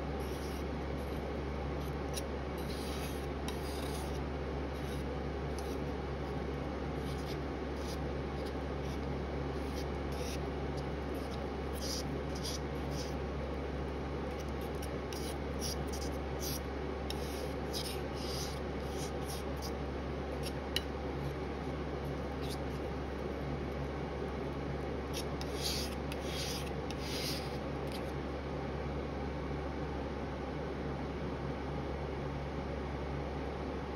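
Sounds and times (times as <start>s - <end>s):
steady low hum: 0.0s - 33.9s
palette knife scraping on glass: 0.2s - 1.2s, 1.8s - 4.2s, 4.8s - 5.8s, 7.0s - 13.2s, 14.4s - 19.8s, 22.4s - 22.8s, 25.1s - 28.0s.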